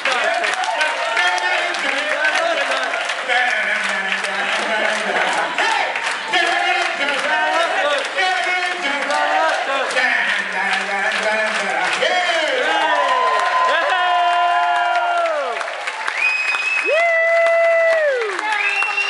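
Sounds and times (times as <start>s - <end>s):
man singing into a microphone: 0.0s - 12.7s
audience clapping and cheering: 0.0s - 19.0s.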